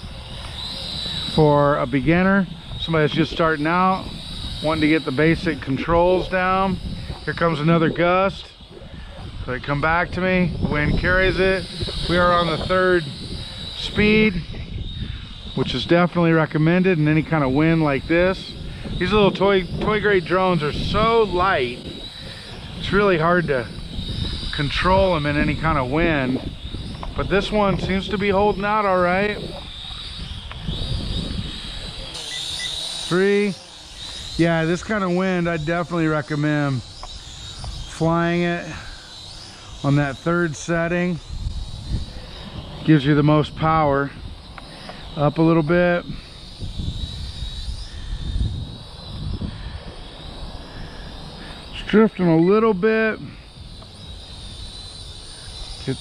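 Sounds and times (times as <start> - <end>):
toy drone propellers whining: 0.0 - 56.0
wind rumbling on microphone: 0.0 - 56.0
man's voice: 27.2 - 29.5.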